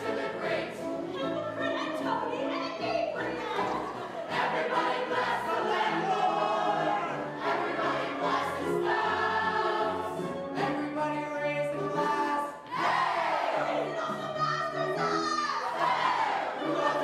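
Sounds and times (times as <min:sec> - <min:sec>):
chorus of performers singing: 0:00.0 - 0:17.0.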